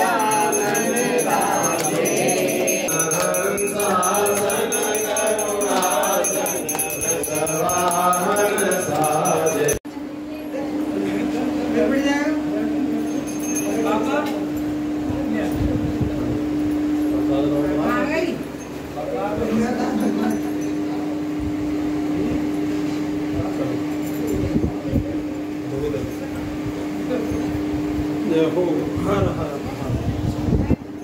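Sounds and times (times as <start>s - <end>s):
high repeating jingle: 0.0s - 9.8s
voices chanting a hymn: 0.0s - 9.8s
steady hum: 0.0s - 10.4s.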